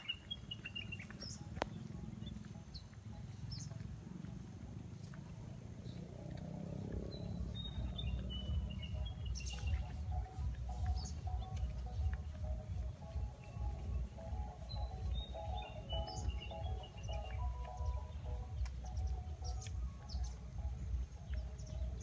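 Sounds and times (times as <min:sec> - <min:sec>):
small birds chirping: 0:00.0 - 0:22.0
low uneven rumble: 0:00.4 - 0:22.0.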